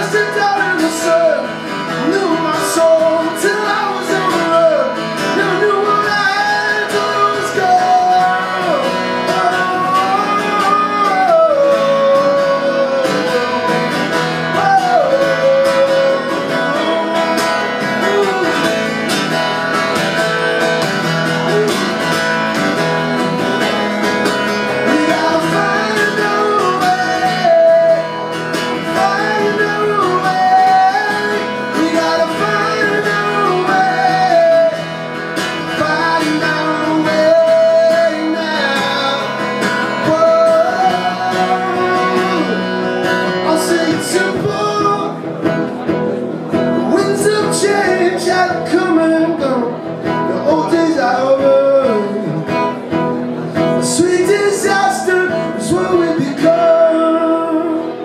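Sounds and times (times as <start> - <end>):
man singing: 0.0 - 45.9, 46.5 - 58.0
strummed acoustic guitar: 0.0 - 58.0.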